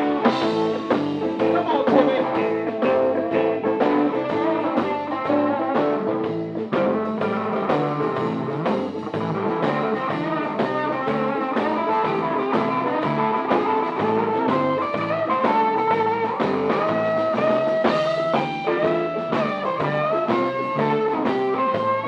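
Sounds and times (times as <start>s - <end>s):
live blues band playing: 0.0s - 22.0s
long bent guitar notes: 0.0s - 22.0s.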